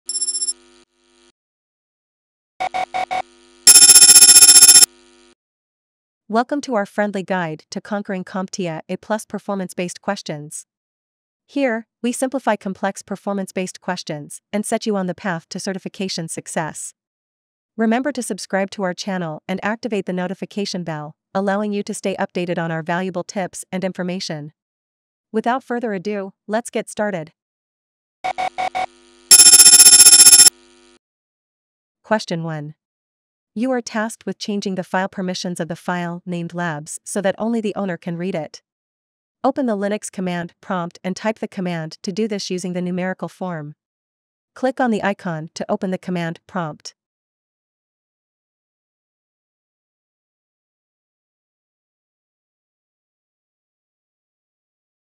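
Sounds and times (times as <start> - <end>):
fast-pulsing beep: 0.1 - 0.5, 2.7 - 4.9, 28.4 - 30.5
short beeps: 0.1 - 0.5, 3.7 - 4.9, 28.4 - 30.5
fast-pulsing electronic ring: 3.7 - 4.9, 29.3 - 30.5.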